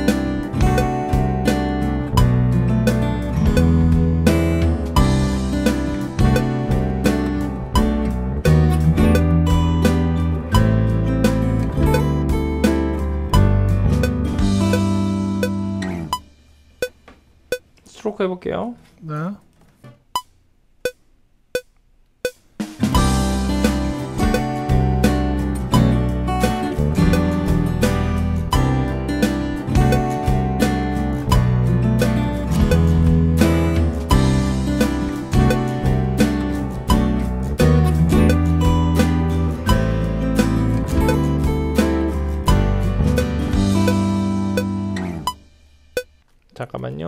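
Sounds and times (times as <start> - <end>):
acoustic guitar strumming: 0.0 - 17.7, 22.3 - 46.2
metronome clicks: 0.6 - 1.6, 2.9 - 3.9, 5.7 - 7.9, 11.8 - 12.3, 14.0 - 17.9, 20.1 - 22.7, 24.2 - 25.2, 26.4 - 28.0, 29.8 - 33.5, 38.1 - 39.2, 40.9 - 45.4
sustained low bass notes: 23.0 - 45.4.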